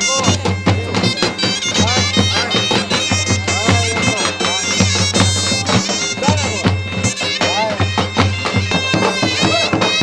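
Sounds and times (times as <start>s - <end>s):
reedy wind instrument melody: 0.0s - 10.0s
sharp percussive beats: 0.0s - 10.0s.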